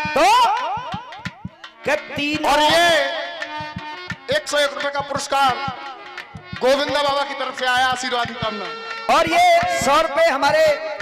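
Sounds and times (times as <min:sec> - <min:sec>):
quick drum beats: 0:00.0 - 0:11.0.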